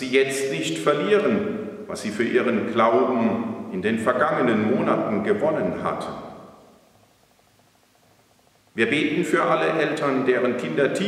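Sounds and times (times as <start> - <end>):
man's voice reverberating: 0.0 - 6.5, 8.8 - 11.0.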